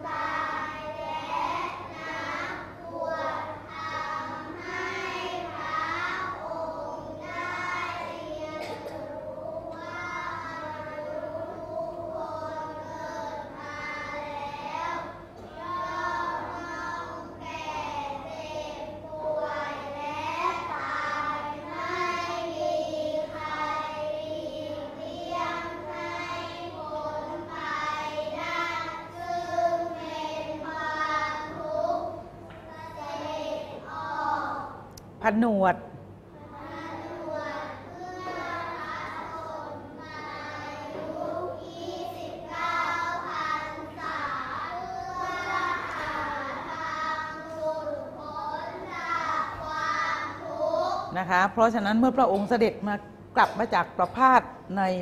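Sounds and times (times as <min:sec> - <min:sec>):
children reciting in unison: 0:00.0 - 0:34.9, 0:36.3 - 0:51.2.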